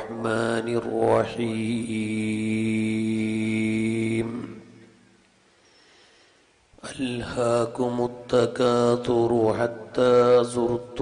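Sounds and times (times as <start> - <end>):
man chanting: 0.0 - 5.0, 6.8 - 11.0.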